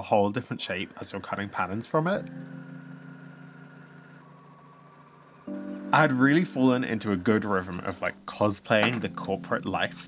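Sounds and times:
overlock sewing machine humming: 1.1 - 5.6.

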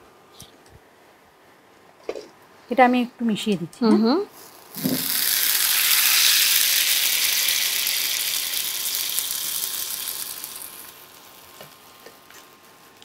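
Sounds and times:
hot oil sizzling in liquid: 4.3 - 13.0.

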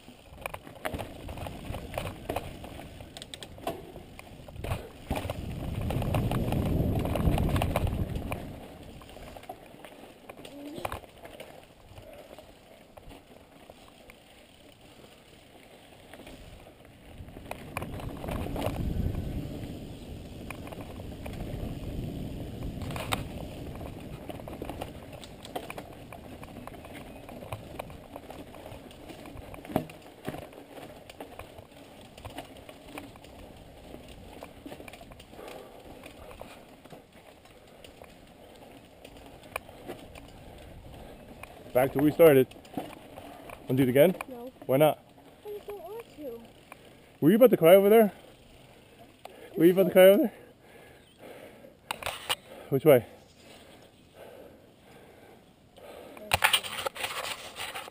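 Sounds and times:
bike clicks and rattles: 0.0 - 57.9
bike tyre and trail rumble: 0.0 - 57.9.

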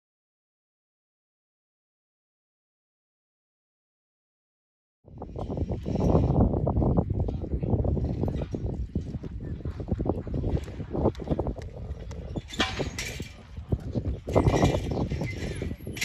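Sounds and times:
hooves thudding on dirt: 5.4 - 16.0.

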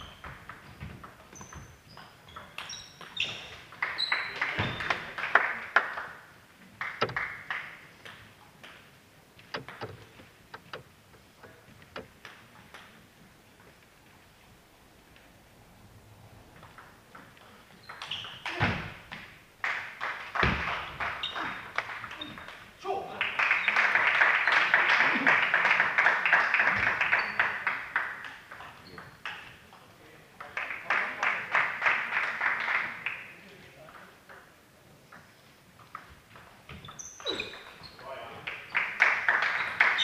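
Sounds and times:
shoes squeaking on floor: 0.0 - 5.0, 17.5 - 18.8, 20.9 - 22.6, 36.6 - 38.2, 39.5 - 40.0
table tennis balls clicking: 9.4 - 10.8.

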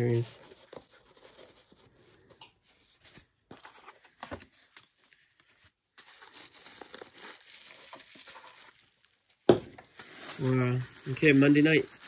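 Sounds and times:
plastic wrapping crinkling: 4.0 - 12.0.

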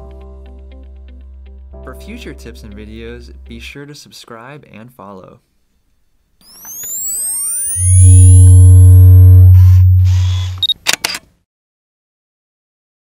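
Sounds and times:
rising swooshing tones: 6.4 - 10.7
deep bass tone with chord: 7.8 - 10.6.

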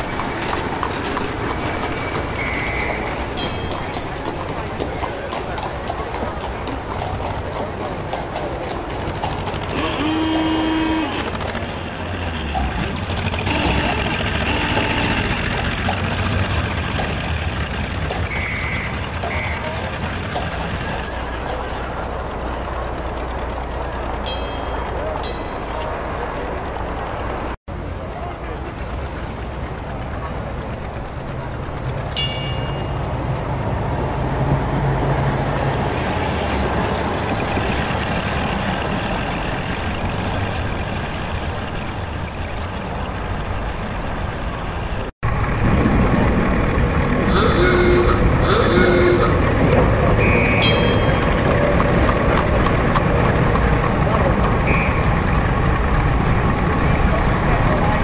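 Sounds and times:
traffic noise: 0.0 - 58.0
short high toots: 50.2 - 51.3
crowd murmur: 51.0 - 58.0.

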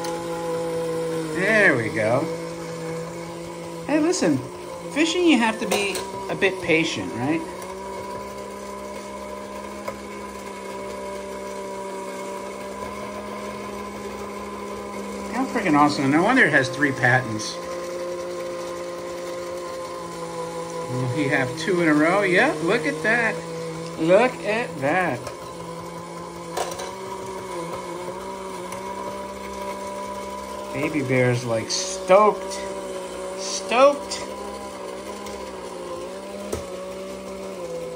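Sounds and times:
toy mechanism humming: 20.6 - 23.4.

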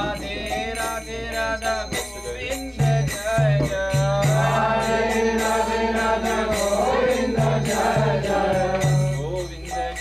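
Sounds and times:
group chanting: 0.0 - 1.2, 4.3 - 10.0
jingling percussion: 0.0 - 10.0.

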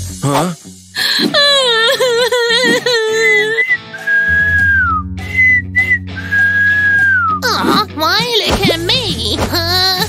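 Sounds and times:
background music: 0.0 - 10.0
person whistling a tune: 3.3 - 7.4.

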